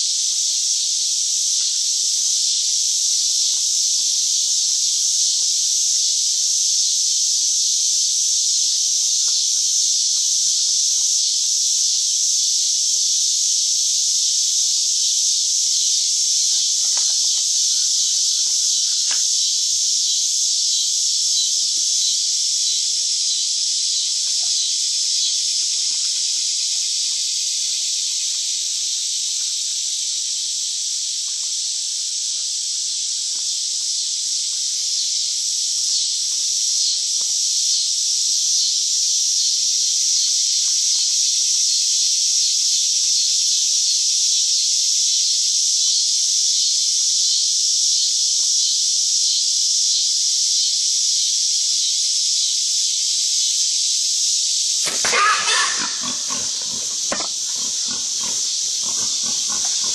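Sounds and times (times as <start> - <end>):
steady high hiss: 0.0 - 43.5, 44.4 - 59.9
hogs grunting: 54.7 - 59.9.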